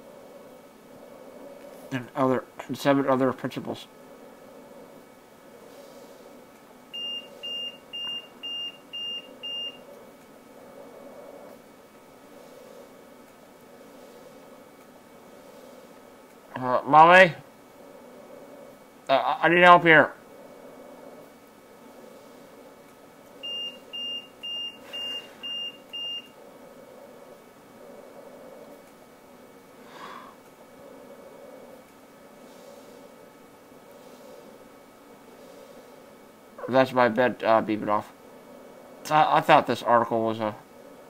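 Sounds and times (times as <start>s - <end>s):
electronic alarm beeping: 6.9s - 9.9s, 23.4s - 26.4s.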